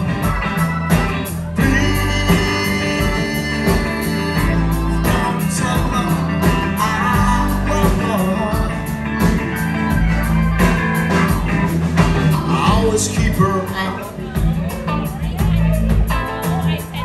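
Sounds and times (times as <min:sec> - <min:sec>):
electric guitar: 0:00.0 - 0:17.0
rock band playing: 0:00.0 - 0:17.0.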